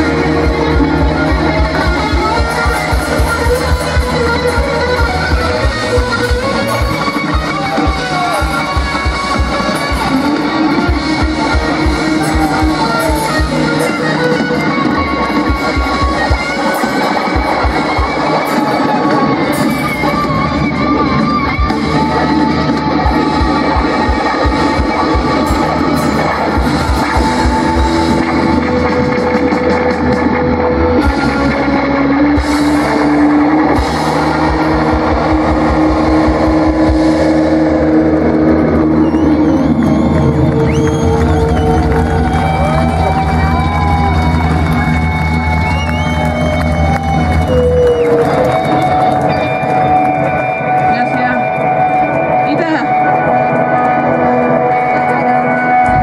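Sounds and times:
bending guitar notes: 0:00.0 - 0:56.0
drums: 0:00.0 - 0:56.0
live rock band playing: 0:00.0 - 0:56.0.

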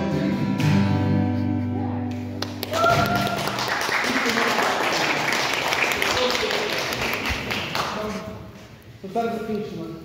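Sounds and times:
audience clapping: 0:02.3 - 0:08.4.

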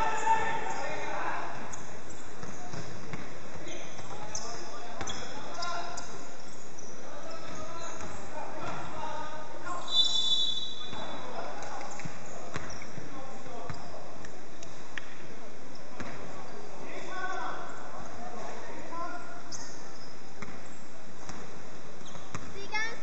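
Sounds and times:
basketball bouncing on hardwood: 0:02.4 - 0:03.3, 0:12.0 - 0:13.0, 0:22.1 - 0:22.6.

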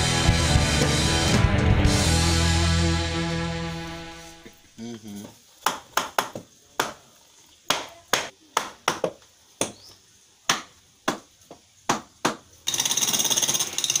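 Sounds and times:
power tool rattling: 0:12.6 - 0:14.0.

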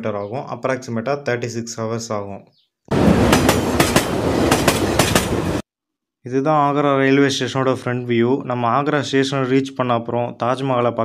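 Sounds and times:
train running rumble: 0:02.9 - 0:05.6
wheels clicking over rail joints: 0:03.0 - 0:05.6.

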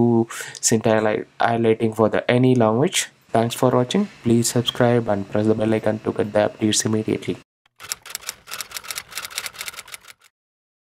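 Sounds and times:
rapid sharp clicks: 0:07.7 - 0:10.3.

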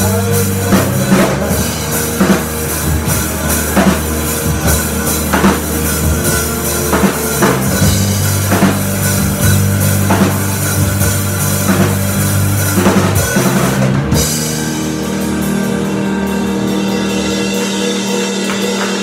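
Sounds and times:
drum kit: 0:00.0 - 0:19.0
rock band playing: 0:00.0 - 0:19.0.

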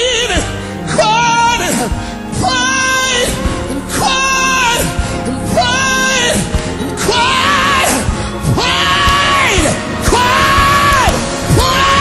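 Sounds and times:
gospel band playing: 0:00.0 - 0:12.0.

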